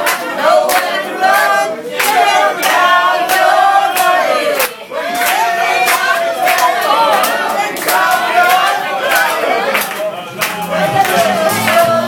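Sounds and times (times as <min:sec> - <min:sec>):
crowd singing together: 0:00.0 - 0:12.0
people clapping: 0:00.0 - 0:12.0.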